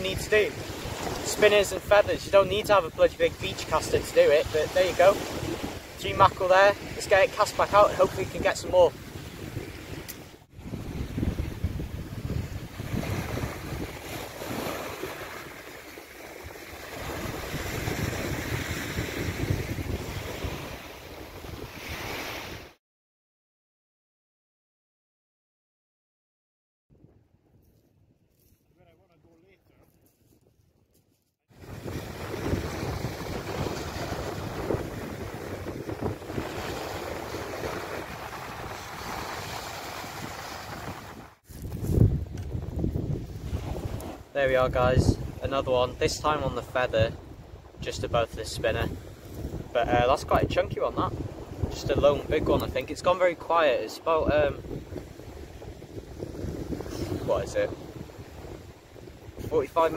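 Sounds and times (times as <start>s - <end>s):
wind buffeting microphone: 0.0s - 22.7s, 31.5s - 59.9s
faint surf: 0.0s - 22.8s, 31.6s - 59.9s.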